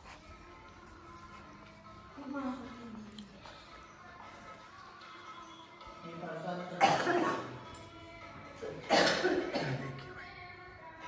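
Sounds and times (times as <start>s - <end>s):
faint background music: 0.0s - 11.0s
person coughing: 6.8s - 7.6s, 8.6s - 10.0s.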